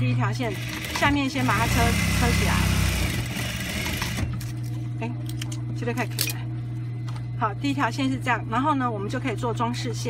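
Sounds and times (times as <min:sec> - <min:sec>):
motor humming: 0:00.3 - 0:05.8
sewing machine stitching: 0:00.4 - 0:04.4.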